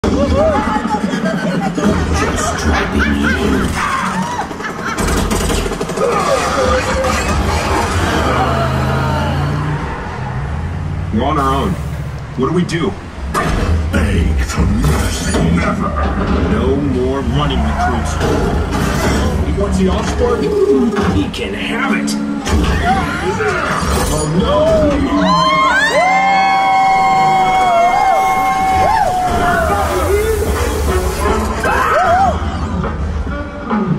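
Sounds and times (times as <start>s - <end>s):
riders screaming: 2.4s - 11.0s, 17.2s - 19.4s, 22.5s - 32.8s
rapid rattle of hits: 3.6s - 8.2s
deep rumble: 5.1s - 25.2s.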